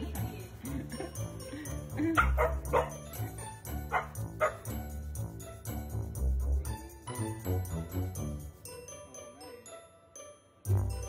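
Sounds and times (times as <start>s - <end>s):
background music: 0.0s - 11.0s
dog barking: 2.2s - 3.0s, 3.9s - 4.7s.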